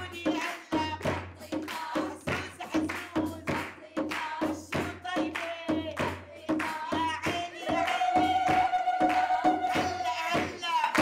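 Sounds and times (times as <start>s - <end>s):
hand clapping in rhythm: 0.0s - 11.0s
people singing: 0.0s - 11.0s.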